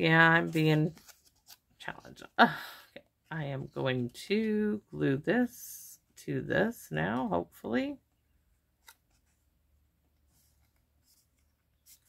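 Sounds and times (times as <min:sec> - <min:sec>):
paper rustling: 0:00.4 - 0:02.2, 0:10.2 - 0:12.0.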